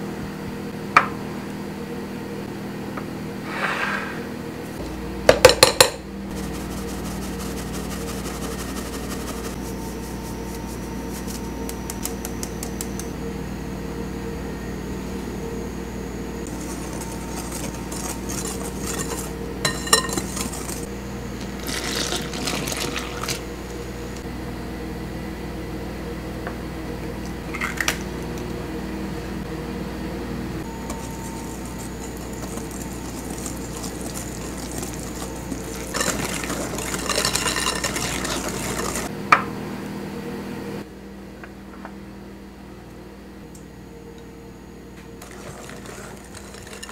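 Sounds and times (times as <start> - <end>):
steady low hum: 0.0 - 46.9
whisk beating batter in bowl: 5.4 - 12.4, 16.5 - 20.9, 30.8 - 39.1, 45.2 - 46.9
utensils clinking on glass: 16.7 - 20.8, 30.9 - 39.1, 45.2 - 46.9
sieve tapping: 30.9 - 39.1.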